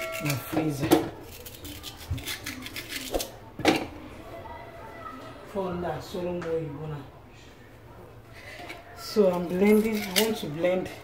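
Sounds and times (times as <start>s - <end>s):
knife clicks and scrapes: 1.2s - 3.4s, 9.3s - 10.4s.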